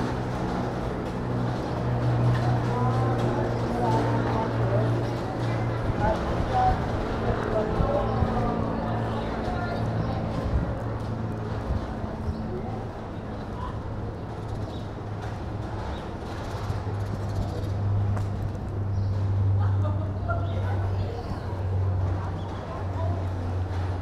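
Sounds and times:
indistinct voices: 0:00.0 - 0:18.0.

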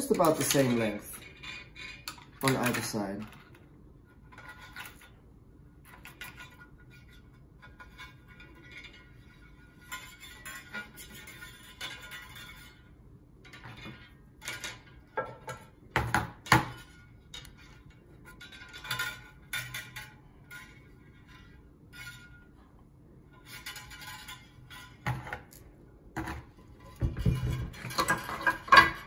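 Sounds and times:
wire scraping ceramic pot: 0:00.0 - 0:02.6, 0:03.4 - 0:15.9, 0:16.7 - 0:29.0
wire clinking on pot: 0:27.0 - 0:29.0.

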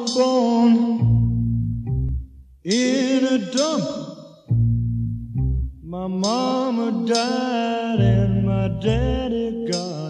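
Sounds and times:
electric bass plucked notes: 0:00.9 - 0:02.7, 0:04.5 - 0:06.3, 0:08.0 - 0:09.6.

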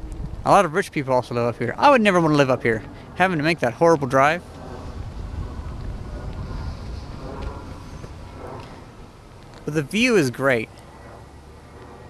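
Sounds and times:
low rumble on microphone: 0:00.0 - 0:12.0.

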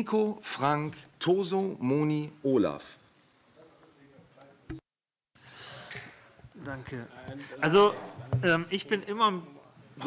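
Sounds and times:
faint room noise: 0:00.0 - 0:04.8, 0:05.4 - 0:10.0
breath into microphone: 0:05.4 - 0:06.4.

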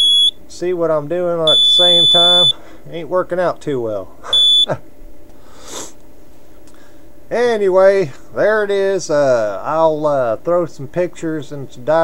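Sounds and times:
short high-pitched electronic beep: 0:01.5 - 0:02.6, 0:04.4 - 0:04.7.

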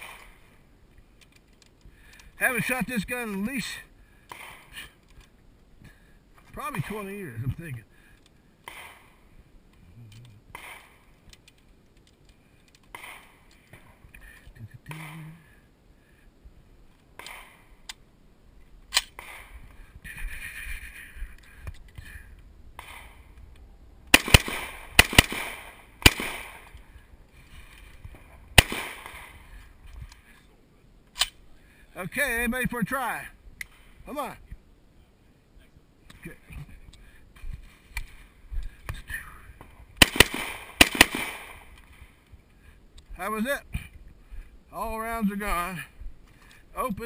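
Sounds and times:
rifle shots: 0:04.3 - 0:04.8, 0:08.6 - 0:09.2, 0:10.5 - 0:11.0, 0:12.9 - 0:13.5, 0:17.2 - 0:17.7, 0:18.9 - 0:19.6, 0:22.8 - 0:23.2, 0:24.1 - 0:26.8, 0:28.5 - 0:29.5, 0:40.0 - 0:41.7.

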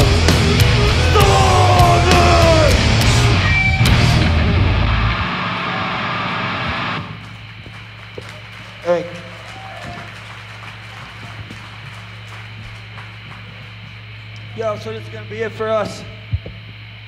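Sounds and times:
amplifier hum: 0:00.0 - 0:17.0
person shouting: 0:01.0 - 0:02.8.

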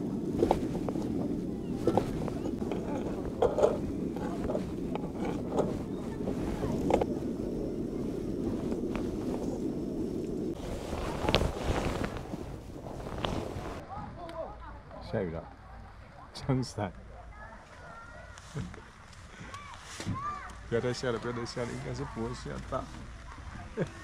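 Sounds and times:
low background rush: 0:00.0 - 0:24.0.

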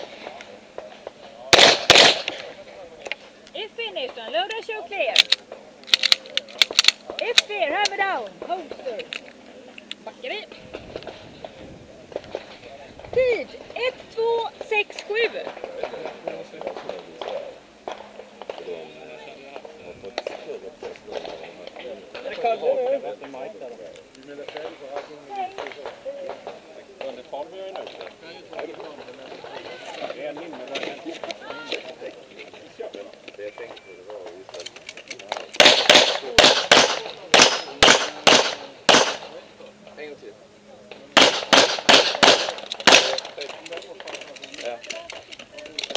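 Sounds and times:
people chattering: 0:00.0 - 0:45.9
pistol shots with echo: 0:01.5 - 0:02.5, 0:35.3 - 0:39.4, 0:41.2 - 0:43.3.

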